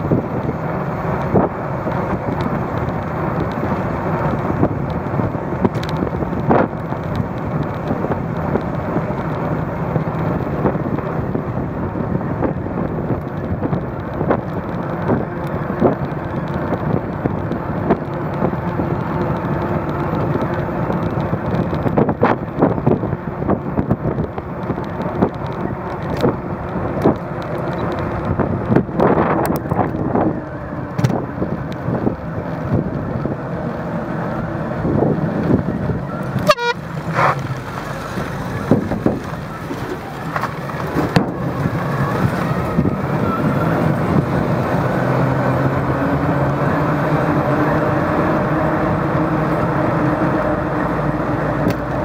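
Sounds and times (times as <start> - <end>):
bicycle riding rumble: 0.0 - 52.0
knocks and rattles over bumps: 12.2 - 45.8.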